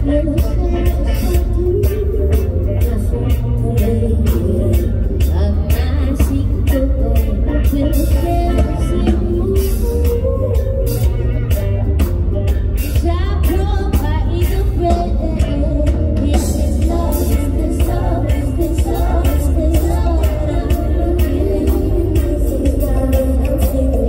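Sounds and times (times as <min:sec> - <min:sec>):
woman singing: 0:00.0 - 0:12.1, 0:12.8 - 0:24.0
drum kit beat: 0:00.0 - 0:24.0
live band playing: 0:00.0 - 0:24.0.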